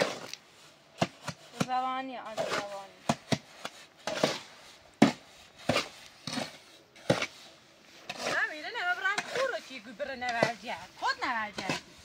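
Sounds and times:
shovel scraping wheelbarrow: 0.0 - 12.0.

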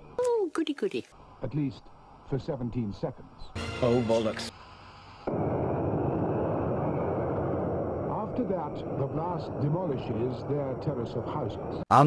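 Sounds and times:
blast wave rushing rumble: 5.3 - 11.8.

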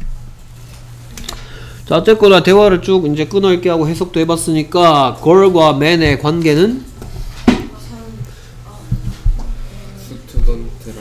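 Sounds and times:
steady low hum: 0.0 - 11.0
man speaking: 1.9 - 6.9.

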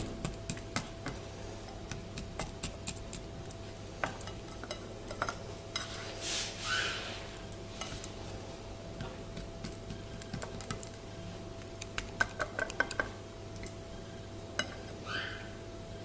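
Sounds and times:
faint steady hum: 0.0 - 16.0
rustle: 5.8 - 8.2.

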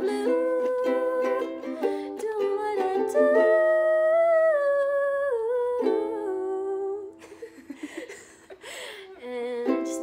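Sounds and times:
strummed ukulele chords: 0.0 - 4.5, 5.7 - 7.2, 9.6 - 10.0.

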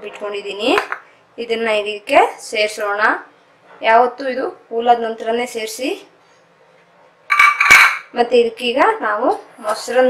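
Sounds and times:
utensils clinking against steel pot: 7.3 - 8.1.

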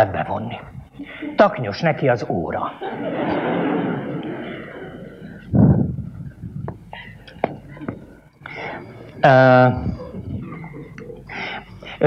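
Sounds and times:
audience laughing: 2.5 - 5.6, 6.9 - 12.0.

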